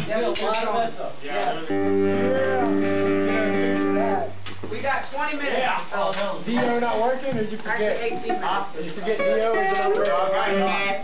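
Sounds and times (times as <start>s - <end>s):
voices talking: 0.0s - 11.0s
amplified guitar low note: 1.6s - 4.4s.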